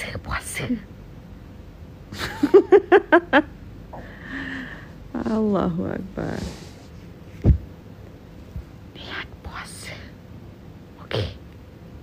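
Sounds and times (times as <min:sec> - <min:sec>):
woman whispering: 0:00.0 - 0:00.9, 0:08.9 - 0:10.2, 0:11.0 - 0:11.4.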